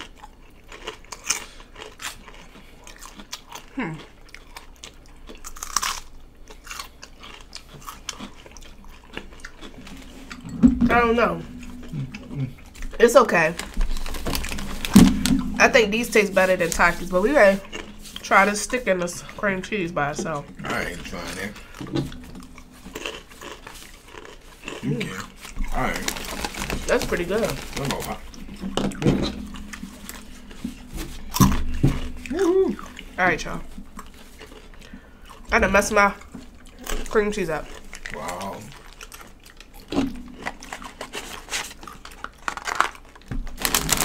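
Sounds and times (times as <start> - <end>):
crunching and chewing: 0.0 - 10.7, 11.4 - 44.0
paper crackling: 25.4 - 28.4, 42.4 - 44.0.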